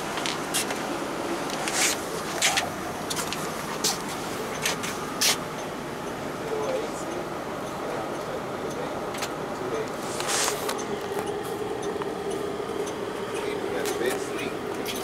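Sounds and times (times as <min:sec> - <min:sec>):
bus cabin hum: 0:00.0 - 0:15.0.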